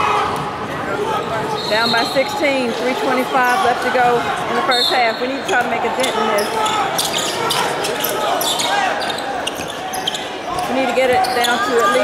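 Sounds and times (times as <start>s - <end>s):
players calling out: 0.0s - 12.0s
sneakers squeaking: 1.4s - 12.0s.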